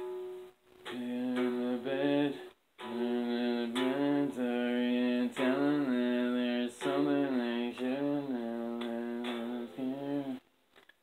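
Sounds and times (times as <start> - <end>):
person singing wordless drone: 0.9 - 10.4.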